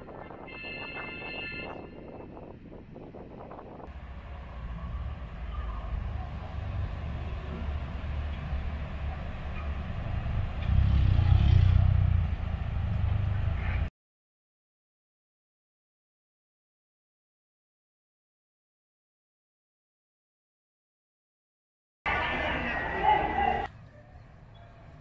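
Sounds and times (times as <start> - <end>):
low outdoor rumble: 2.5 - 13.9.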